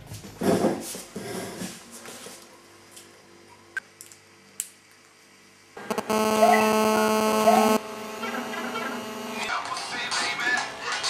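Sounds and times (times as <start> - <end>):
loud buzzing tone: 5.8 - 9.5.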